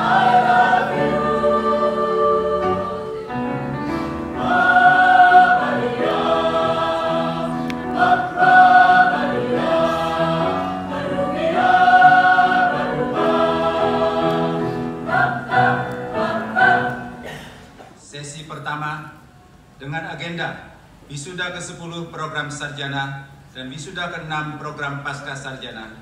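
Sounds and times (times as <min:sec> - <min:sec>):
mixed choir singing in harmony: 0:00.0 - 0:17.5.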